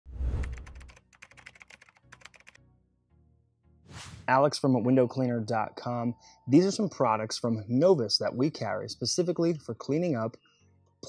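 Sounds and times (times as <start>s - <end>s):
rising whoosh: 3.9s - 4.3s.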